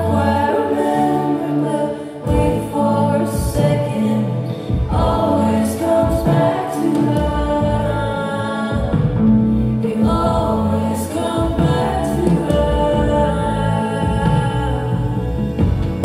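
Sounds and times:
bass guitar: 0.0s - 16.0s
keyboards: 0.0s - 16.0s
people singing layered vocals: 0.0s - 16.0s
drums: 2.2s - 16.0s.

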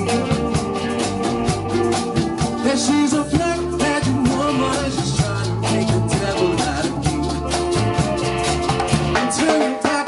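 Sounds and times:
drum kit: 0.0s - 10.0s
electric guitars: 0.0s - 10.0s
keyboard: 0.0s - 10.0s
man singing into microphone: 2.6s - 7.5s, 9.2s - 10.0s.

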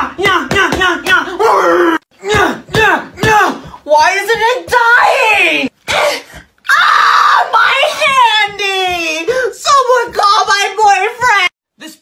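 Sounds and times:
young man screaming: 6.6s - 8.4s.

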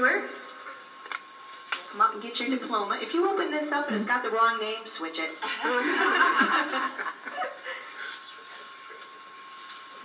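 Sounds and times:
thin steady hum: 0.0s - 10.0s
person chuckling: 5.4s - 8.2s.

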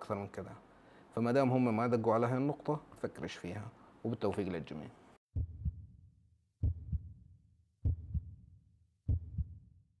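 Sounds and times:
heartbeat thumps: 5.4s - 6.0s, 6.6s - 7.2s, 7.8s - 8.5s, 9.1s - 9.7s.

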